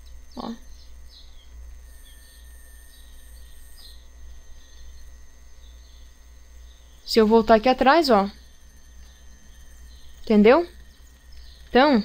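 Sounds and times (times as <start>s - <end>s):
faint high chirps: 0.0s - 12.0s
steady low hum: 0.0s - 12.0s.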